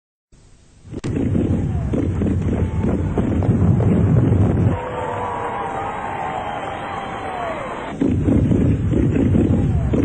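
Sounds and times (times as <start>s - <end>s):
fireworks booming and crackling: 1.0s - 4.8s, 7.9s - 10.0s.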